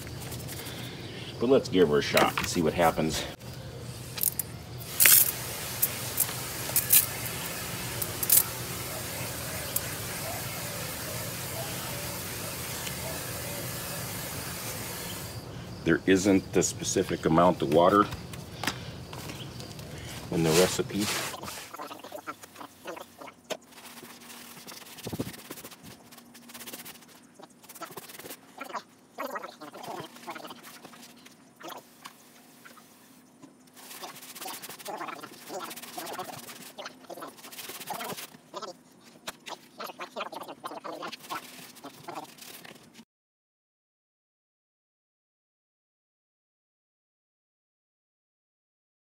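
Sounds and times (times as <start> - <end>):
gritty scraping and wet squishing: 4.1 - 10.2, 16.9 - 43.0.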